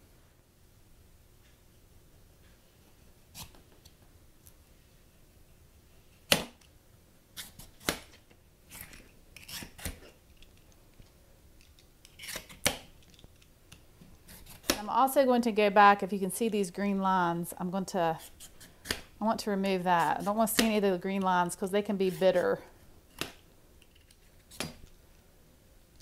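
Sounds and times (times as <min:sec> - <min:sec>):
vegetable peeler scraping squash skin: 0:08.7 - 0:10.2, 0:12.0 - 0:12.7, 0:14.3 - 0:14.9, 0:19.8 - 0:20.8.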